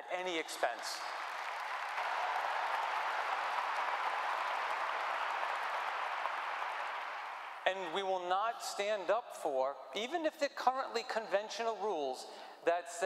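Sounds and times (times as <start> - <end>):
audience applauding: 0.4 - 7.6.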